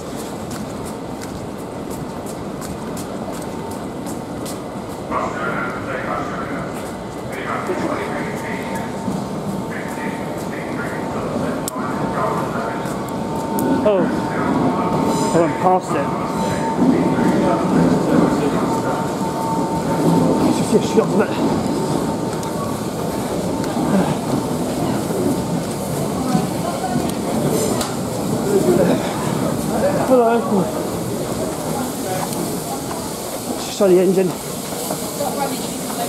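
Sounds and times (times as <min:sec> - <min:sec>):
trains standing noise: 0:00.0 - 0:36.0
background chatter of people: 0:03.1 - 0:36.0.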